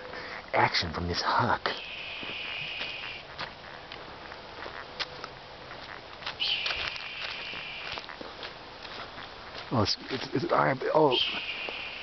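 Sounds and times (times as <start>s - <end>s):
footsteps walking: 1.2s - 12.0s
raspy hawk calls: 1.7s - 3.4s, 6.3s - 8.2s, 10.9s - 12.0s.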